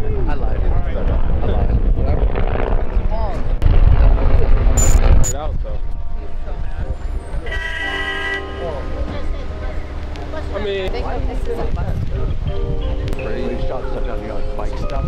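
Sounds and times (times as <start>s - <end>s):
wind buffeting microphone: 0.0s - 7.7s, 8.8s - 15.0s
indistinct voices: 4.6s - 15.0s
city traffic: 4.8s - 5.4s, 6.3s - 13.2s
car horn: 7.4s - 9.1s.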